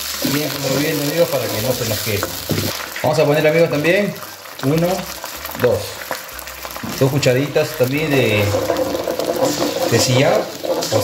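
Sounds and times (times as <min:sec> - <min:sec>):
sauce sizzling in a wok: 0:00.0 - 0:11.0.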